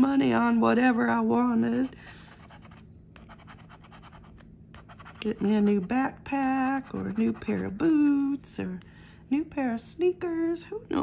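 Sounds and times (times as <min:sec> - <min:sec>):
scraping lottery ticket coating: 0:06.7 - 0:08.1.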